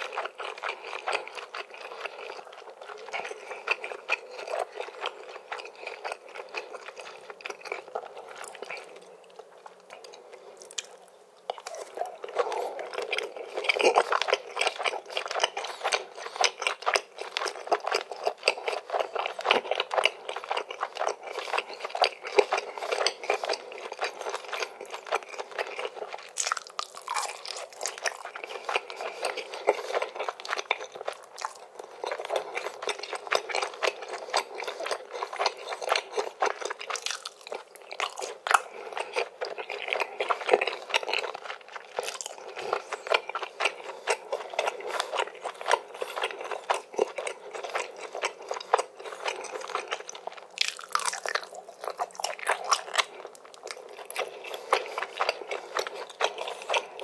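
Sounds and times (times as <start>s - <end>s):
chewing food with wet smacks: 0.0s - 57.0s.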